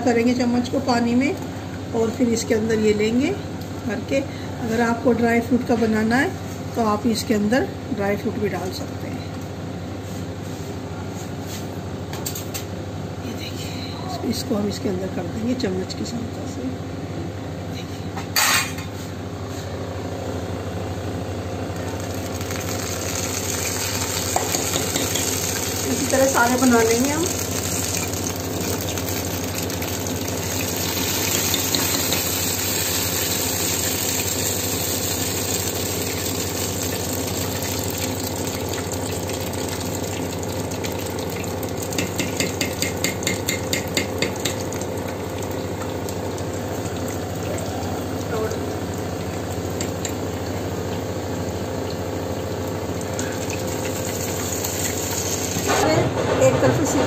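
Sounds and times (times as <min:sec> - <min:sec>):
fritters sizzling in hot oil: 0:21.8 - 0:55.7.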